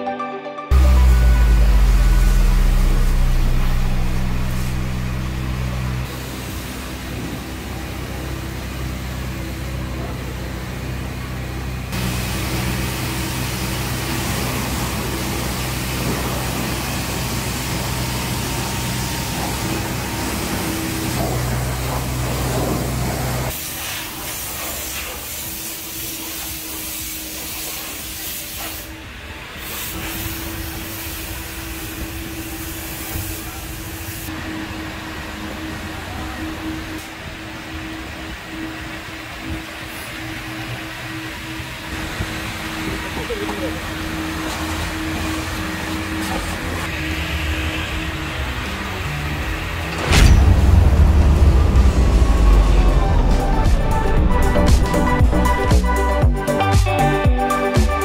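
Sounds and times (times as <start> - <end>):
machine hum: 0.7 - 23.5, 34.3 - 56.5
hiss of spray: 12.0 - 34.3.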